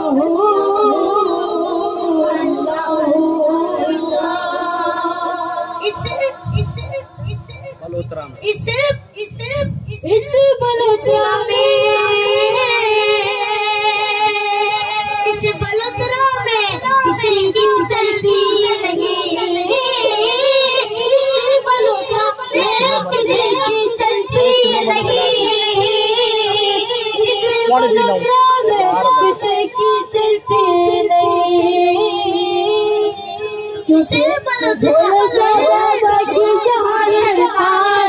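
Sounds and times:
boy singing unaccompanied: 0.0s - 38.0s.

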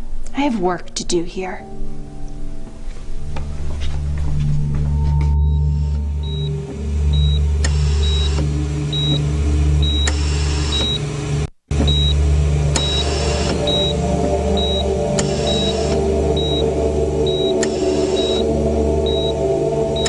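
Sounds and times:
steady low drone: 0.0s - 20.0s.

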